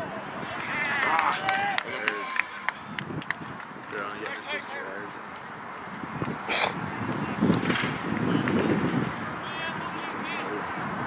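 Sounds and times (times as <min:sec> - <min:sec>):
voices shouting: 0:00.0 - 0:02.9
sharp claps: 0:00.8 - 0:04.6.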